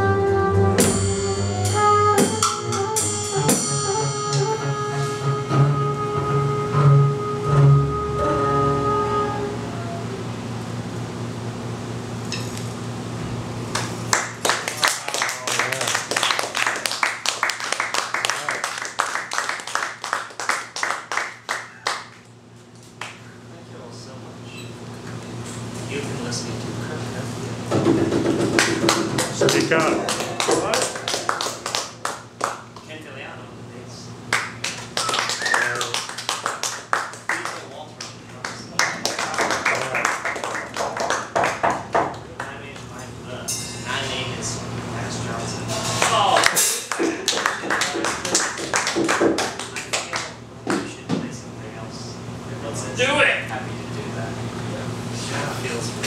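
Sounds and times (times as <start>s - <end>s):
low steady hum: 0.0s - 17.7s
hand clap: 13.7s - 22.3s, 23.0s - 23.2s, 28.2s - 32.9s, 34.3s - 43.0s, 45.9s - 51.0s
sparse applause: 14.1s - 22.1s, 28.6s - 32.7s, 34.3s - 42.1s, 46.0s - 50.4s.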